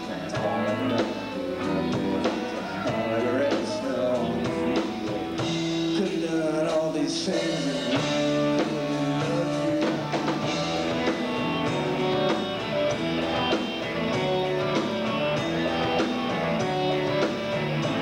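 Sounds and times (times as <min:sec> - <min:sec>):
drums: 0:00.0 - 0:18.0
electric guitars: 0:00.0 - 0:18.0.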